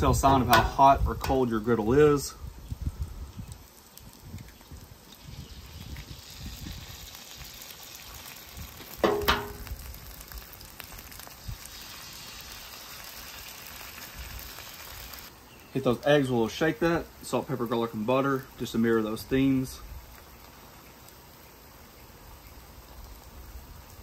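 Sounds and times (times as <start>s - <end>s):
eggs sizzling on a griddle: 0.0s - 24.0s.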